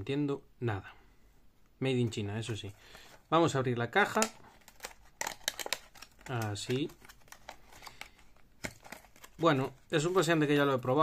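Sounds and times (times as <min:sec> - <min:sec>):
plastic packaging crinkling: 0:04.0 - 0:10.4.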